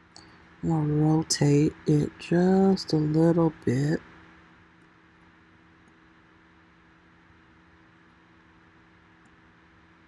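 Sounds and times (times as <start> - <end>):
faint low hum with hiss: 0.0 - 10.0.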